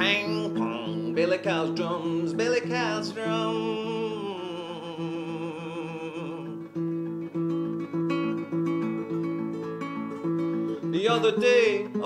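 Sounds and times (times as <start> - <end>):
classical guitar strumming chords: 0.0 - 12.0.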